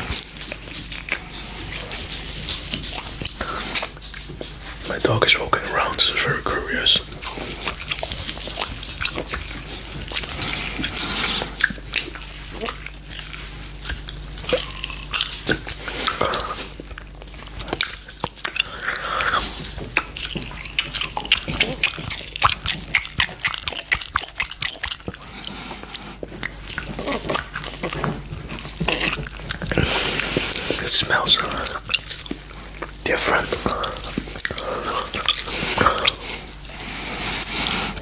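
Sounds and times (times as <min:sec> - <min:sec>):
biting and chewing gummy candy: 0:00.0 - 0:38.0.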